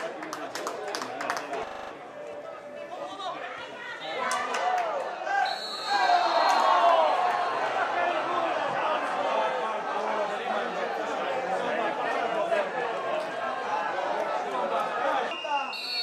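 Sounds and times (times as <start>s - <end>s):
referee's whistle: 5.4s - 6.8s, 15.3s - 16.0s.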